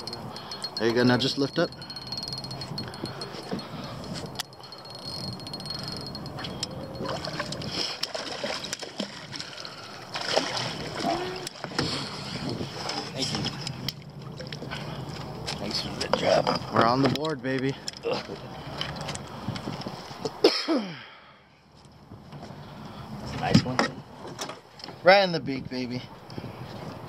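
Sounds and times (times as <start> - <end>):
fish splashing: 6.3 - 12.1
water sloshing in a net: 7.0 - 15.4.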